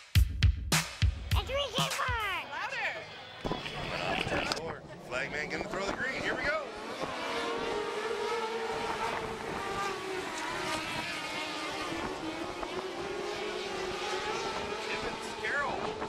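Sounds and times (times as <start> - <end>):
race car engines droning: 2.3 - 16.0.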